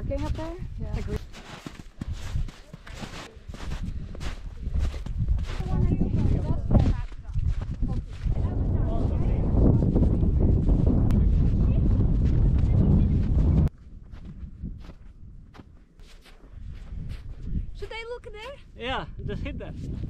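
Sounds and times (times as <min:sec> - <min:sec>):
wind buffeting microphone: 0:00.0 - 0:15.8, 0:16.5 - 0:20.0.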